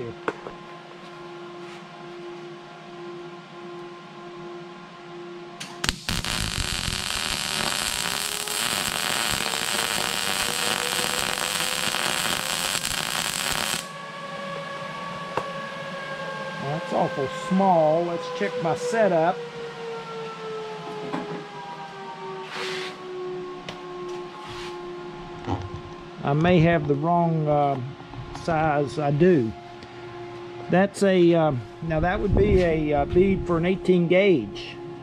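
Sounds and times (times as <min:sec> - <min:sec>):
steady machine hum: 0:00.0 - 0:19.3, 0:24.7 - 0:35.0
welding arc crackling: 0:05.6 - 0:14.0.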